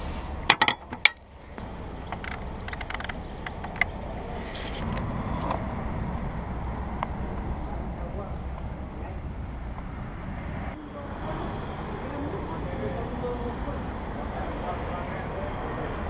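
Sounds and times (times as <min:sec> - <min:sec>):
steady low rumble: 0:00.0 - 0:10.8
metal fuel cap snapping shut: 0:00.5 - 0:01.2.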